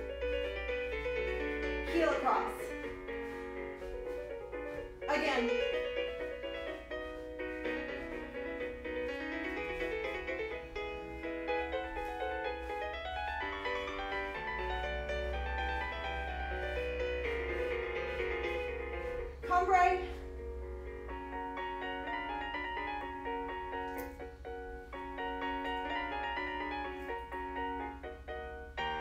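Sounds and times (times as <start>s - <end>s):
piano chords: 0.0s - 29.0s.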